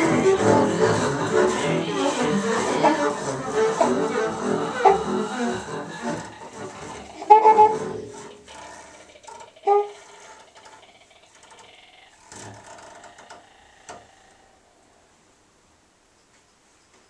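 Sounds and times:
scratchy double bass bowing: 0.0s - 11.1s.

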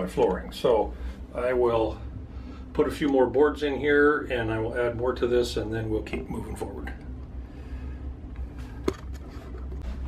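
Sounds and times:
low steady background hum: 0.0s - 10.0s.

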